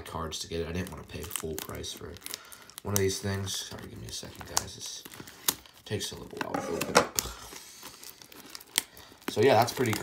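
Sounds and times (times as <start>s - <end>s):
wrapping crinkling and tearing: 0.0s - 10.0s.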